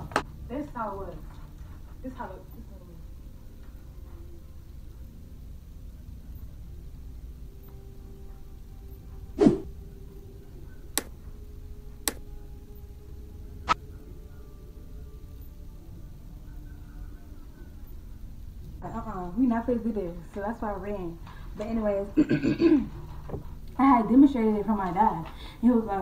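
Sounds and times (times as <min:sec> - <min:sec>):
low room rumble: 0:00.0 - 0:26.0.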